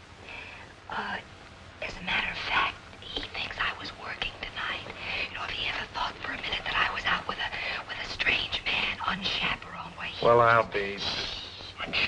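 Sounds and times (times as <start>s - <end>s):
woman whispering: 0.9s - 1.2s, 1.8s - 12.0s.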